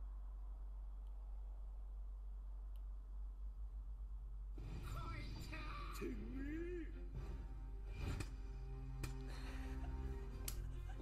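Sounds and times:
background music with held notes: 6.6s - 11.0s.

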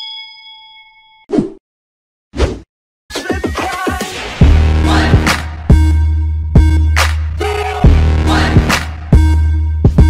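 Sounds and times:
notification bell ding: 0.0s - 1.3s.

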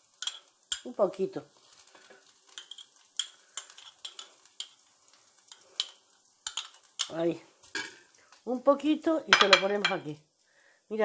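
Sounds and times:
metal spoon clinking on glass cup: 9.3s - 10.0s.

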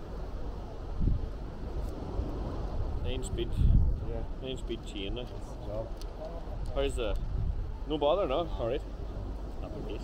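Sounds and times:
wind blowing across microphone: 0.0s - 10.0s.

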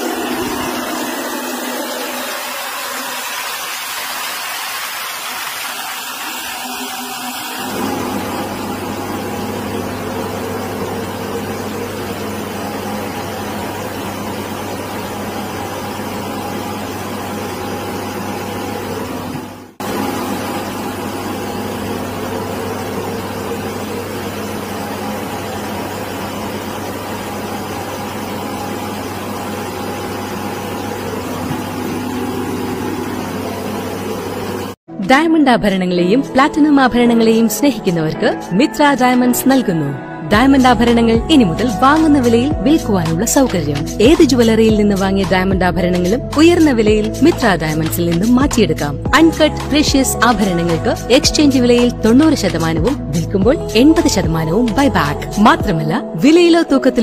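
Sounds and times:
helicopter engines droning: 0.0s - 4.4s, 5.2s - 34.8s
low hum: 0.0s - 34.8s.

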